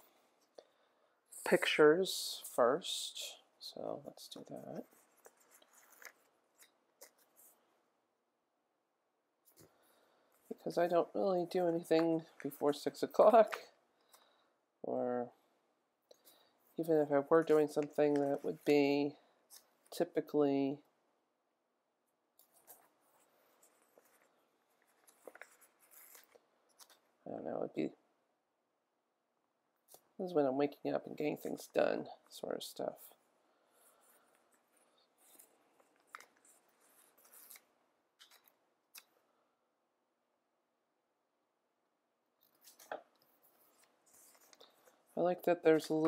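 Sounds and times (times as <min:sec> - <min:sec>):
paper rustling: 0:04.7 - 0:07.7, 0:22.4 - 0:27.2, 0:33.7 - 0:38.6, 0:42.4 - 0:46.0.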